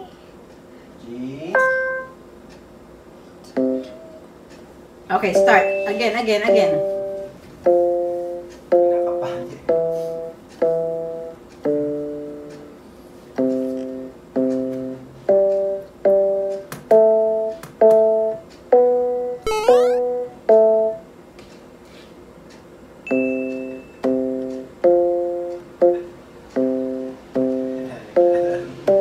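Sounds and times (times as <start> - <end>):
electronic keyboard notes: 1.5 - 2.2, 3.6 - 4.2, 5.3 - 12.8, 13.4 - 21.0, 23.1 - 29.0.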